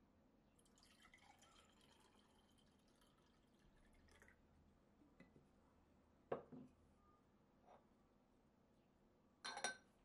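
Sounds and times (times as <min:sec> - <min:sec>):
faint liquid trickle: 0:00.5 - 0:04.8.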